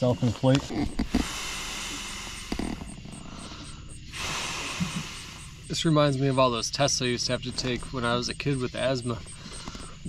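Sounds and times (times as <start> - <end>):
person inhaling: 1.0 - 5.7, 9.3 - 10.0.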